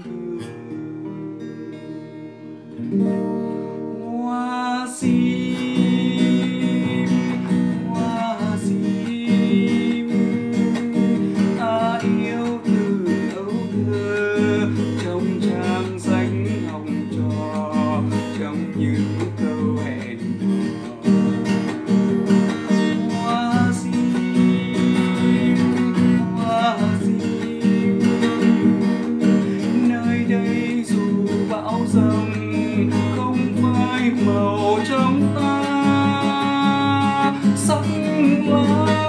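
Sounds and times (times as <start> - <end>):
man singing slow song: 0.0 - 2.2, 3.6 - 39.0
strummed nylon-string guitar: 0.0 - 39.0.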